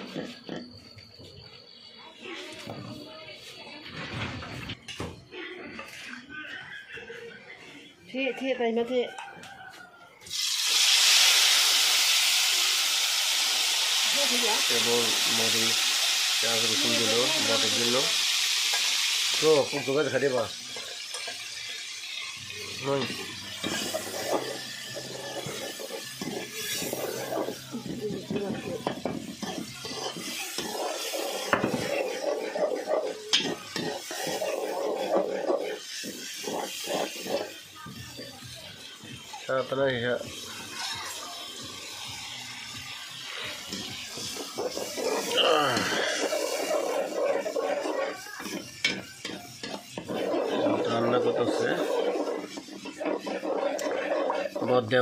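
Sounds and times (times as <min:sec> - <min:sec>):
light sizzle: 0:10.2 - 0:55.0
metal spoon scraping pot: 0:19.4 - 0:38.4, 0:43.4 - 0:55.0.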